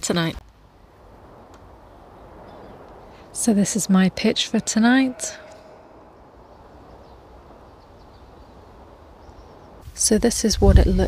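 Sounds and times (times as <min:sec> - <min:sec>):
faint wind noise: 0:00.0 - 0:11.0.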